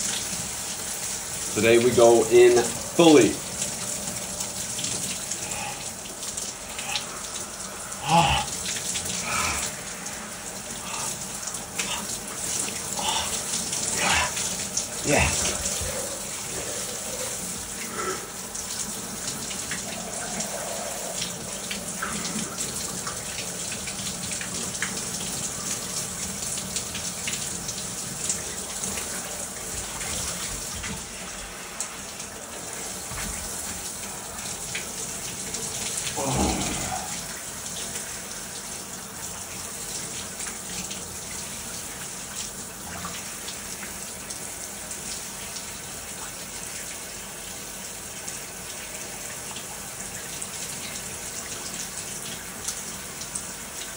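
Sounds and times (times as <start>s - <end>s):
shower water spraying and splashing: 0.0s - 53.9s
low vocal sound: 5.3s - 6.0s, 6.7s - 11.2s, 11.8s - 12.2s, 12.9s - 18.4s, 19.7s - 22.5s, 36.1s - 37.4s
person gasping and exclaiming: 7.9s - 8.6s, 9.2s - 9.8s, 10.8s - 11.2s, 12.9s - 14.4s, 36.2s - 37.2s.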